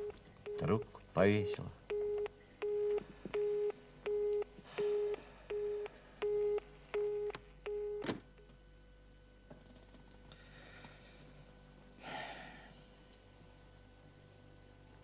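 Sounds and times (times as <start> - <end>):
telephone busy tone beeps: 0.0 - 0.8, 1.4 - 8.0.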